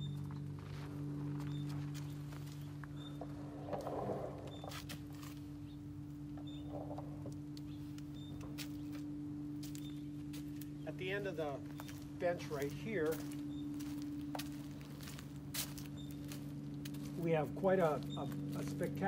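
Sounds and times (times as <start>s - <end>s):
low two-tone hum: 0.0s - 19.0s
footsteps: 0.2s - 5.5s, 11.6s - 18.9s.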